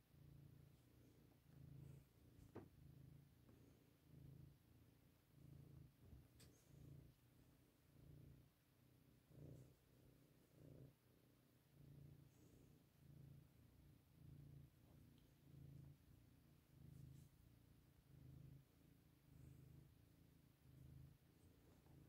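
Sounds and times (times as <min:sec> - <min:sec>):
cat purring: 0:00.0 - 0:22.0.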